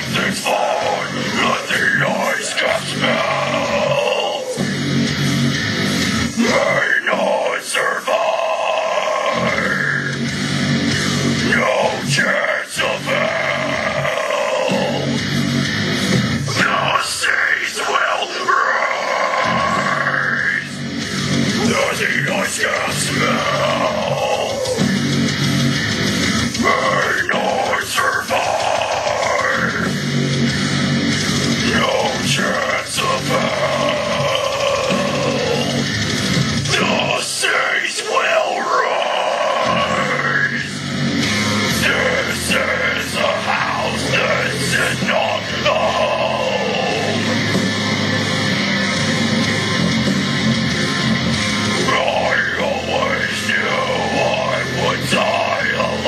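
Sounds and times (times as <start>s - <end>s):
harsh screamed vocal: 0.0s - 56.0s
heavy guitars: 0.0s - 56.0s
heavy metal backing track: 0.0s - 56.0s.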